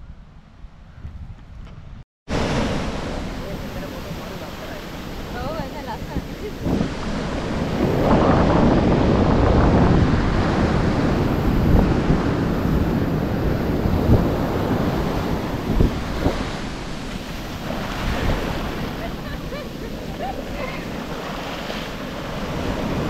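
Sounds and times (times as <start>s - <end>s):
wind buffeting microphone: 0.0s - 23.0s
ocean surf washing on sand: 2.3s - 23.0s.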